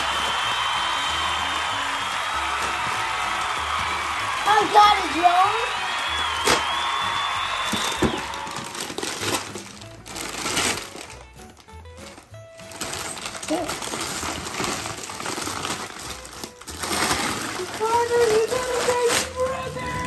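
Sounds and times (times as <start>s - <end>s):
wrapping paper crinkling and tearing: 0.0s - 4.9s, 6.4s - 20.0s
background music with held tones: 0.0s - 20.0s.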